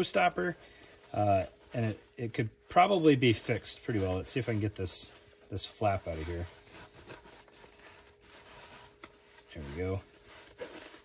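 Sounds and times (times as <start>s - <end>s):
fabric rustling: 0.0s - 11.0s
zipper being worked: 6.7s - 11.0s.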